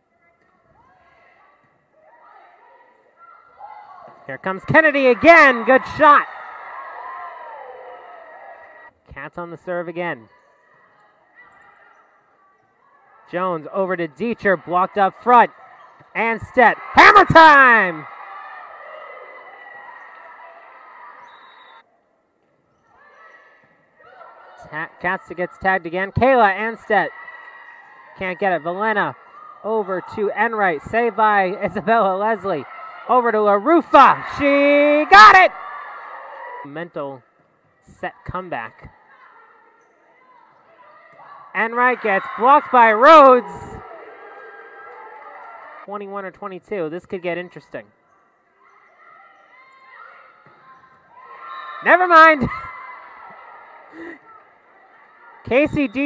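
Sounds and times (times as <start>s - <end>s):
faint gymnasium ambience: 0.0s - 56.0s
volleyball court noise: 0.0s - 56.0s
faint shoe squeak: 39.6s - 41.2s.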